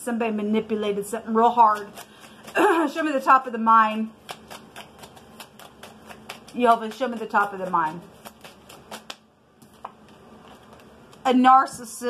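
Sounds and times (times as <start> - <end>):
cards being shuffled: 4.2 - 11.3.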